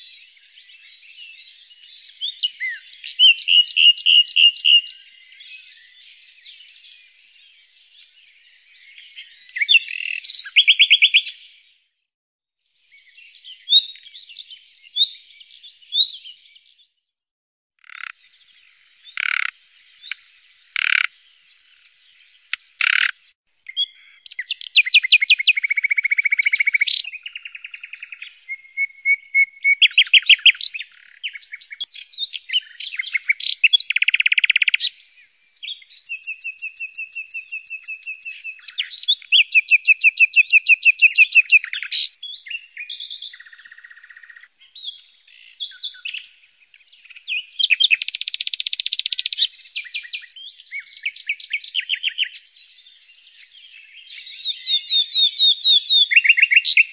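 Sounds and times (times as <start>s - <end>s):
bird singing trills: 0.0s - 11.6s, 12.9s - 17.0s, 17.9s - 56.9s.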